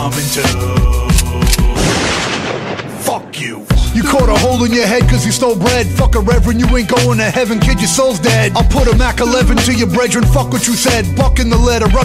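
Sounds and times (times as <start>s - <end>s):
hip hop beat with heavy bass: 0.0s - 1.8s, 3.7s - 12.0s
person rapping: 0.0s - 1.8s, 3.0s - 12.0s.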